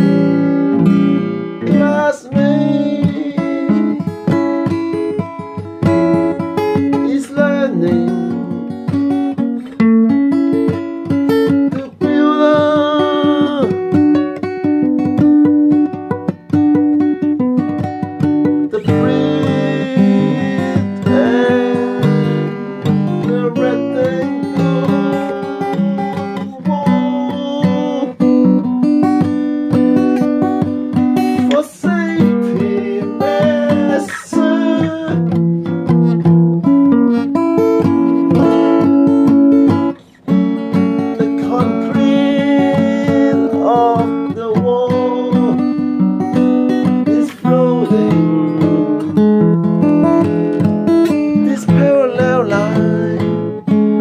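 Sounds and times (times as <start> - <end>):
acoustic guitar music: 0.0 - 54.0.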